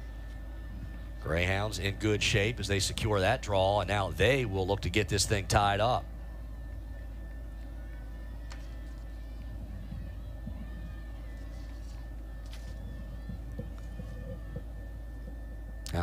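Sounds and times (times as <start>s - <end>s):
steady low hum: 0.0s - 16.0s
thin steady tone: 0.0s - 16.0s.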